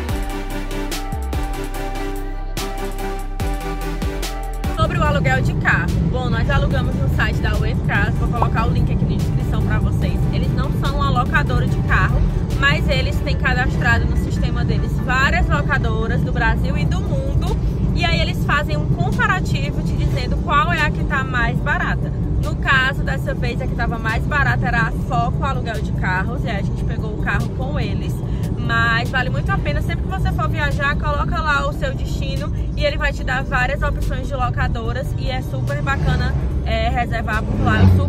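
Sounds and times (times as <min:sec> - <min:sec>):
car road and engine rumble: 0:00.0 - 0:38.0
woman talking: 0:04.8 - 0:38.0.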